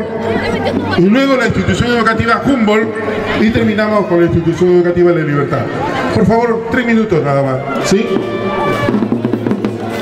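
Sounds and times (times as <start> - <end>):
drums: 0.0 - 2.0, 7.6 - 10.0
marching band playing: 0.0 - 10.0.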